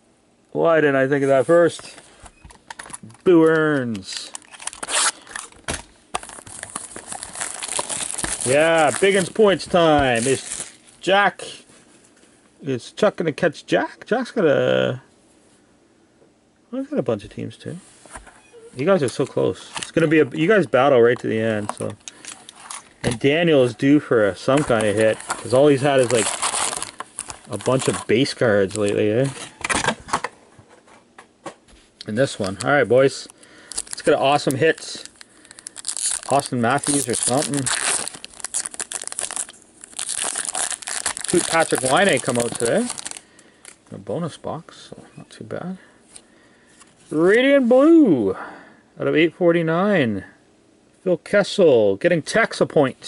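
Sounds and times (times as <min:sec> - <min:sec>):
handling foil card packs: 0:01.1 - 0:11.7, 0:18.8 - 0:30.3, 0:32.0 - 0:43.9
plastic shrink wrap crinkling: 0:02.7 - 0:11.1, 0:19.6 - 0:29.5, 0:32.2 - 0:43.8.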